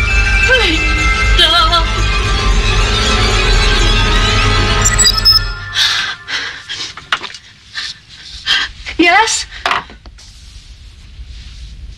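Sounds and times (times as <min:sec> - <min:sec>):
tune: 0:00.2 - 0:06.3.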